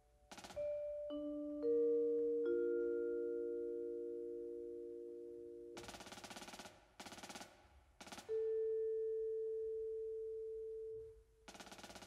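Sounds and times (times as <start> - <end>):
vibraphone note ringing: 0.6 - 5.8.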